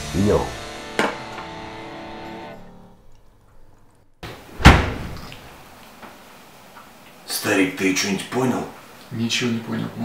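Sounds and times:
guitar chord ringing: 0.8s - 2.9s
loud thump: 4.2s - 5.3s.

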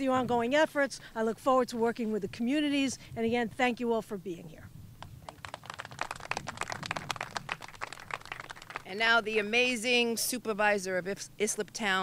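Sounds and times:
small group applauding: 5.2s - 8.9s.

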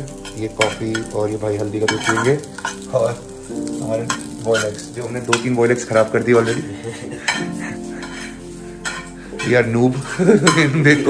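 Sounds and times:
egg sizzling in a frying pan: 0.0s - 11.0s
spatula scraping a pan: 4.0s - 11.0s.

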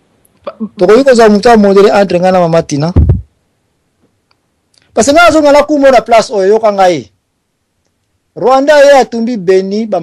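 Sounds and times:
man speaking: 0.5s - 3.2s, 5.0s - 7.1s, 8.4s - 10.0s
short low thump: 3.0s - 3.3s.

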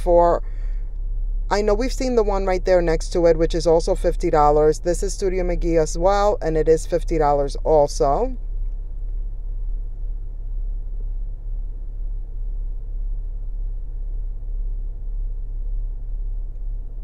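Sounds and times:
store ambience low rumble: 0.0s - 17.0s.

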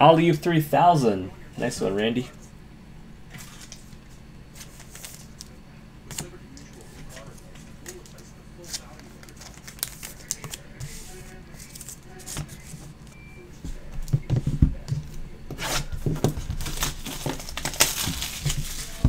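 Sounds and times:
plastic shrink wrap crinkling: 7.0s - 10.6s, 15.6s - 19.0s.

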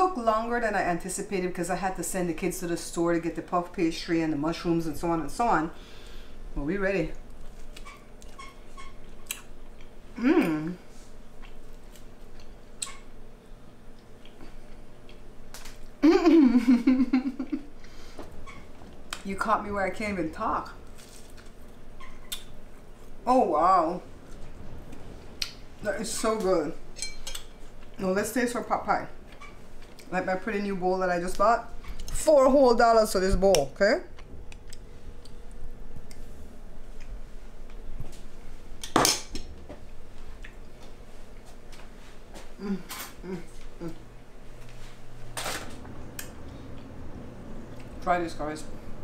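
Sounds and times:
woman humming mm: 10.1s - 10.9s, 42.5s - 44.1s.

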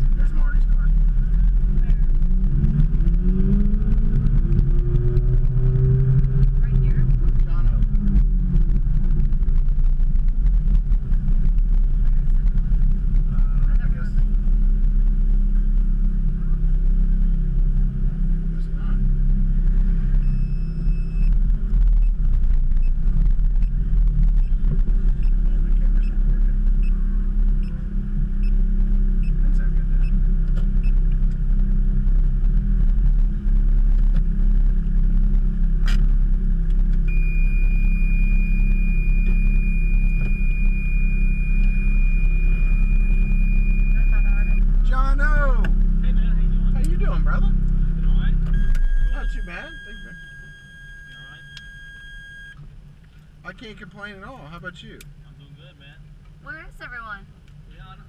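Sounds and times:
car engine idling: 0.0s - 58.0s
steady high-pitched tone: 37.1s - 44.7s.

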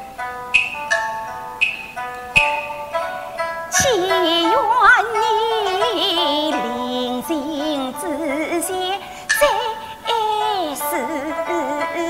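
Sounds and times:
instrumental accompaniment: 0.0s - 12.0s
woman singing opera: 3.7s - 12.0s.

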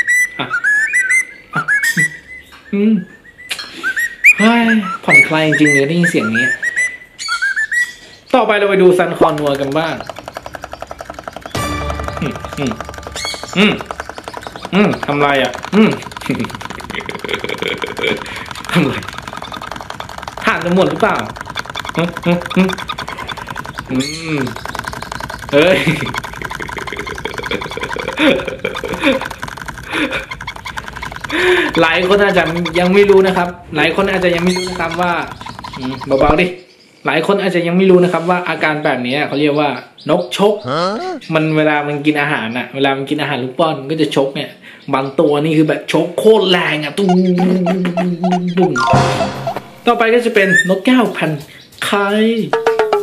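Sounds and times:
cockatiel whistling: 0.0s - 8.0s, 50.4s - 50.8s
parrot pecking plastic cup: 9.2s - 33.4s, 34.0s - 36.2s
man exclaiming: 40.6s - 41.3s
man laughing: 40.7s - 41.2s.

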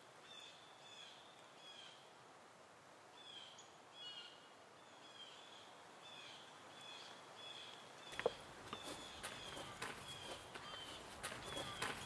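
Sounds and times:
soft steady hiss: 0.0s - 12.0s
bird short high calls: 5.0s - 12.0s.

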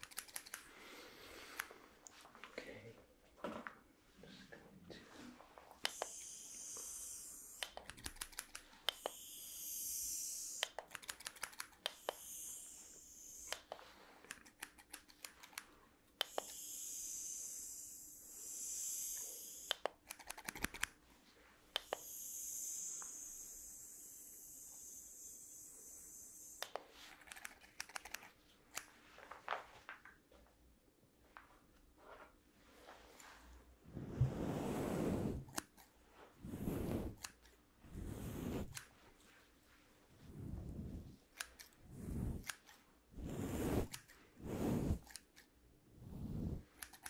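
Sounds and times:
scissors snipping hair: 0.0s - 0.7s, 5.8s - 17.9s, 18.6s - 21.0s, 21.8s - 28.9s, 35.4s - 36.0s, 37.1s - 37.6s, 38.6s - 39.0s, 41.2s - 42.9s, 43.8s - 44.2s, 45.0s - 45.6s, 46.6s - 47.0s.

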